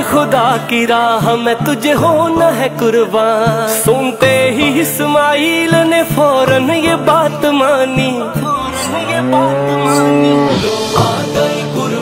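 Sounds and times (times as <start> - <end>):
background music: 0.0 - 12.0
cow mooing: 8.6 - 10.8.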